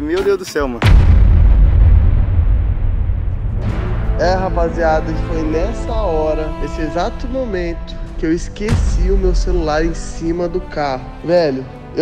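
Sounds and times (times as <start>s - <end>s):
deep muffled boom: 0.8s - 10.8s.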